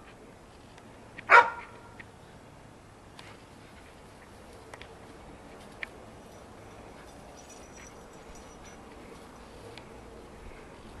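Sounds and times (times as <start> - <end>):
dog barking: 1.3 - 1.7.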